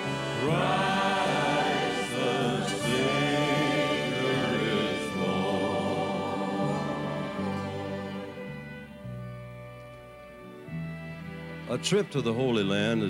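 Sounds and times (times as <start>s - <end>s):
choir singing a hymn: 0.0s - 9.0s.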